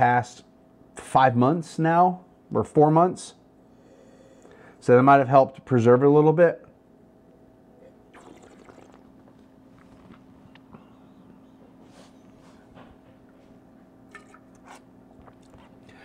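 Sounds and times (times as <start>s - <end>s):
faint steady hum: 0.0s - 16.0s
wine sipping in mouth: 7.8s - 10.3s.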